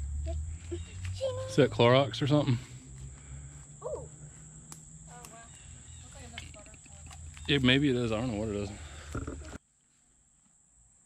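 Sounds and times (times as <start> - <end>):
high-pitched insect drone: 0.0 - 9.6.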